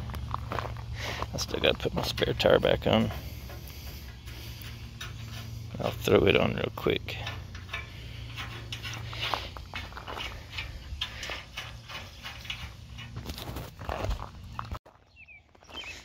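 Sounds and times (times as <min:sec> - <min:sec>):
steady low hum: 0:00.0 - 0:14.8
tools clicking on steel frame: 0:02.0 - 0:13.7.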